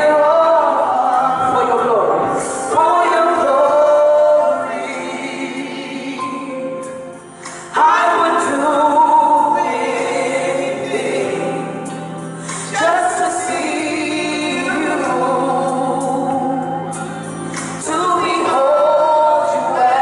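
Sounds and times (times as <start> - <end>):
women singing gospel: 0.0 - 20.0.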